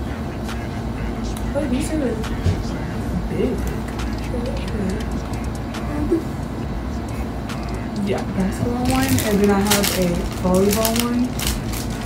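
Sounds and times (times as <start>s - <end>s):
faint murmured voices: 0.0s - 12.0s
low background rumble: 0.0s - 12.0s.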